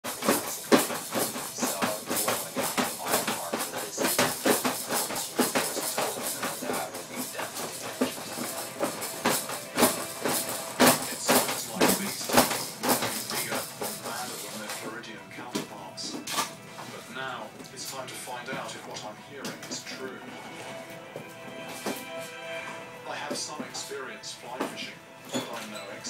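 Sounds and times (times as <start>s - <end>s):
music playing: 0.0s - 26.0s.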